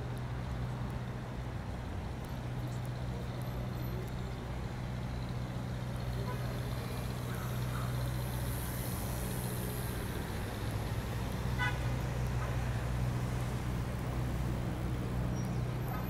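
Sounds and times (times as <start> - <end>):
car and bus engines rumbling: 0.0 - 16.0.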